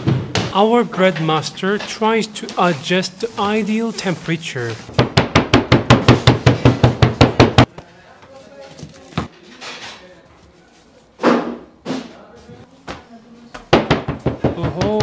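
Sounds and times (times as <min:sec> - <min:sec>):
wooden stamp tapping dough: 0:13.6 - 0:15.0
knocks: 0:13.7 - 0:15.0.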